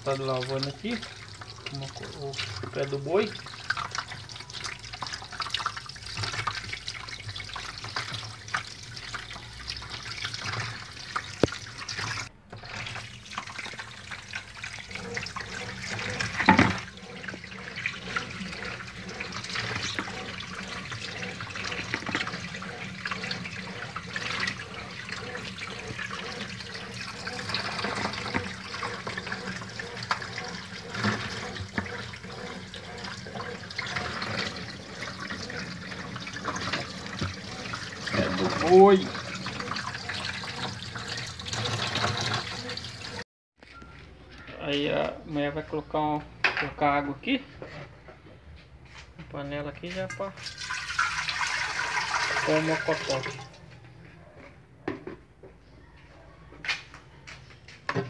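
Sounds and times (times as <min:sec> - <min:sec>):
tap water splashing into metal tray: 0:00.0 - 0:43.2, 0:50.2 - 0:53.6.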